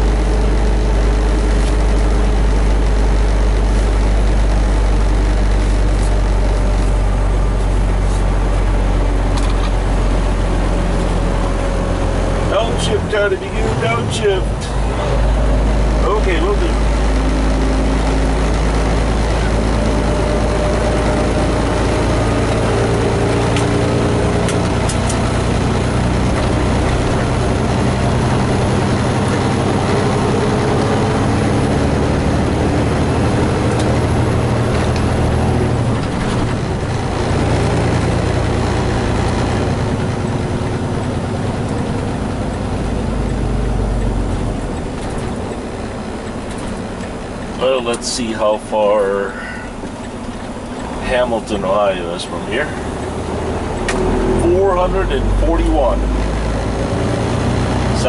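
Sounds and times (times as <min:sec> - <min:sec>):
diesel truck engine downshifting: 0:00.0 - 0:58.0.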